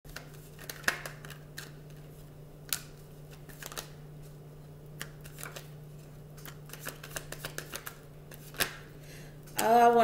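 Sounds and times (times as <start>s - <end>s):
cards being shuffled: 0.1s - 8.8s.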